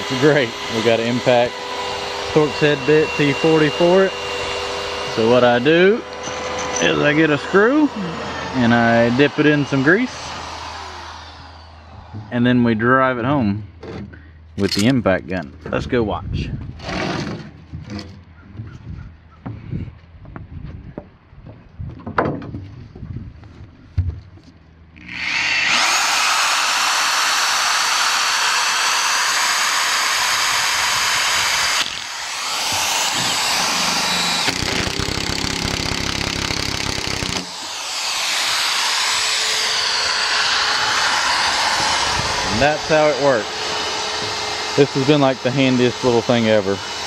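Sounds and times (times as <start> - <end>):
power drill boring through wood: 0.0 - 12.7, 16.8 - 17.5, 25.0 - 47.0.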